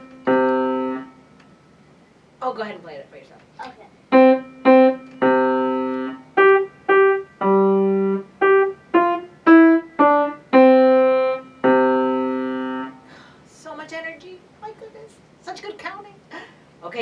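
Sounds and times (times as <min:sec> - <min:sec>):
grand piano slow simple tune: 0:00.0 - 0:01.4, 0:04.1 - 0:13.0.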